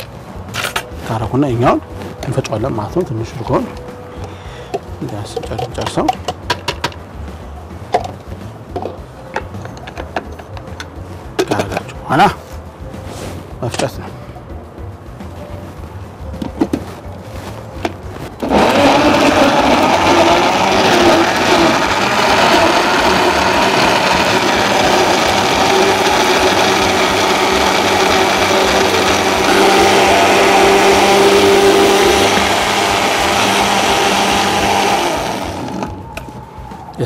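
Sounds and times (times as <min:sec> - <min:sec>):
blender blending ice: 0:18.4 - 0:36.0.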